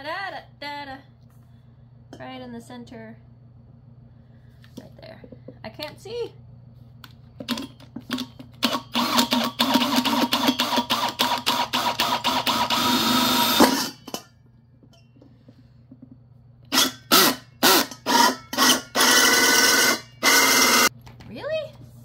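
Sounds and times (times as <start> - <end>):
power drill boring into metal: 8.6 - 14.2, 16.7 - 20.9.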